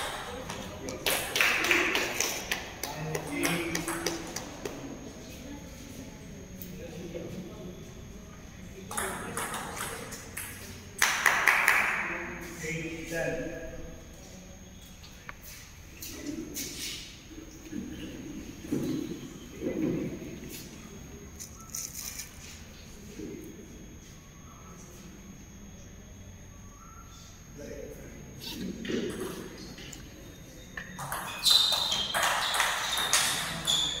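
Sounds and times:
table tennis ball hits: 0.0 - 4.8, 8.9 - 12.0, 30.8 - 34.0.

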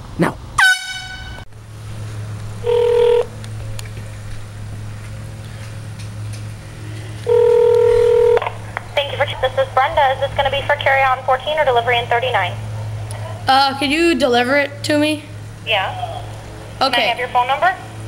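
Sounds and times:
air horn blasts: 0.6 - 1.5.

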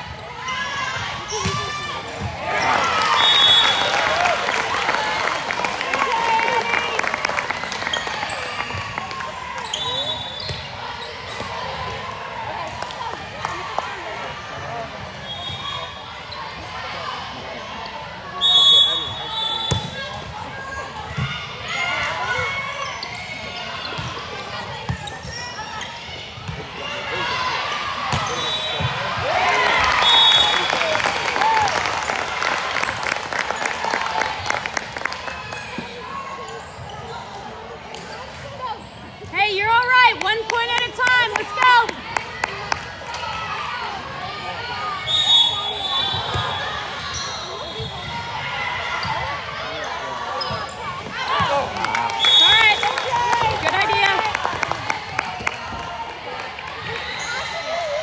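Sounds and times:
players shouting and cheering: 0.0 - 36.7, 38.6 - 58.0.

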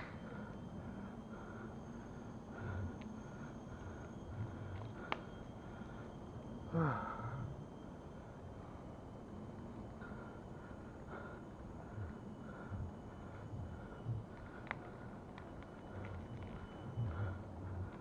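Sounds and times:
person breathing heavily: 0.0 - 7.6, 9.8 - 15.3, 15.9 - 18.0.

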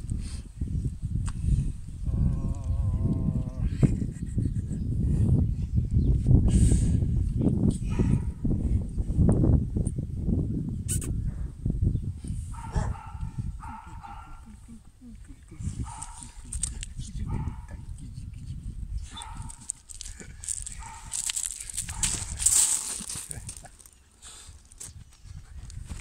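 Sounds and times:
dogs vocalizing: 12.6 - 14.7, 15.5 - 16.6.

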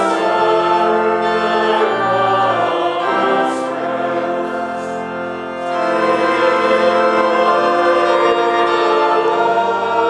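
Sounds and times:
choir singing a hymn: 0.0 - 10.0
organ accompaniment: 0.0 - 10.0.

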